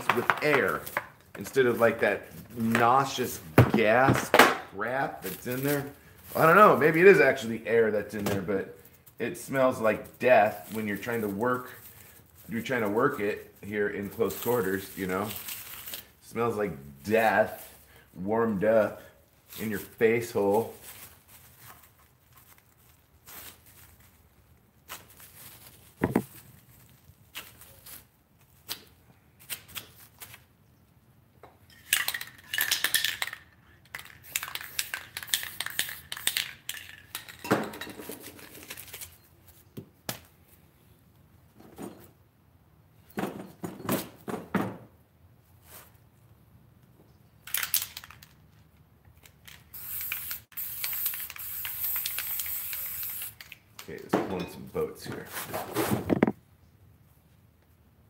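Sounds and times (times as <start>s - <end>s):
spray paint can hissing: 34.0s - 36.9s, 49.7s - 53.5s
cans and tools clinking: 54.1s - 54.7s.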